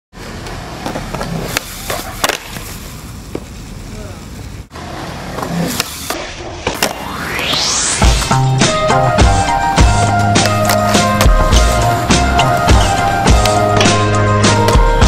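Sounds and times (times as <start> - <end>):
skateboard wheels rolling: 0.2 - 15.0
skateboard clacks: 0.4 - 2.7
rising swoosh: 6.8 - 14.6.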